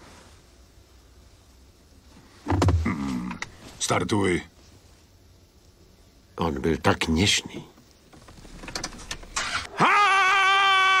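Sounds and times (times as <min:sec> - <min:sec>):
loud high-pitched cry: 0:09.4 - 0:11.0.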